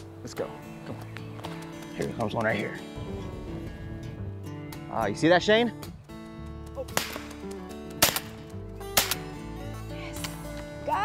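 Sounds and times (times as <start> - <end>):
soft background music: 0.0 - 11.0
shotgun shots: 7.0 - 7.4, 8.0 - 8.4, 9.0 - 9.3.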